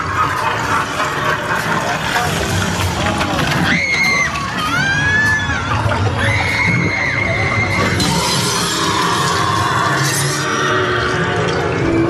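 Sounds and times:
horror music: 0.0s - 12.0s.

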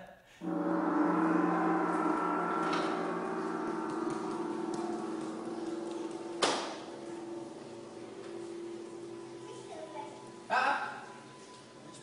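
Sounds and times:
sharp knock: 0.4s - 7.4s
large gong ringing: 0.4s - 12.0s.

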